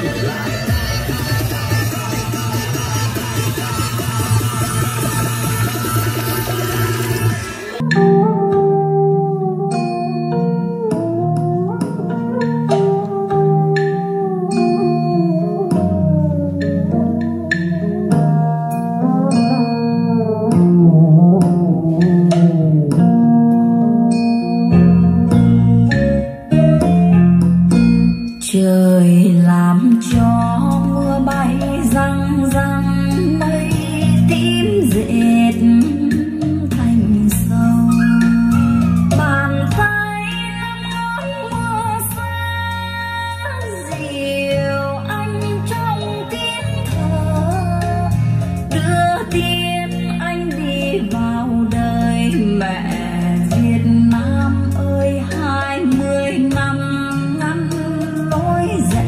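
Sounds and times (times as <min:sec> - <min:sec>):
song through speakers: 0:00.0 - 0:59.0
plucked guitar over bass line: 0:07.8 - 0:59.0.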